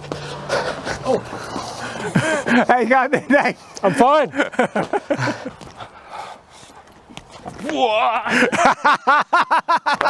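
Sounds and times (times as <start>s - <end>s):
breathy panting: 0.2s - 2.6s, 5.1s - 6.9s.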